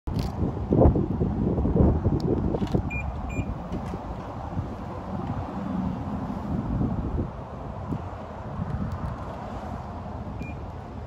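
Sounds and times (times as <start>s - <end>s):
wind noise on microphone: 0.1s - 11.0s
car key fob beeps: 2.9s - 3.6s, 10.4s - 10.8s.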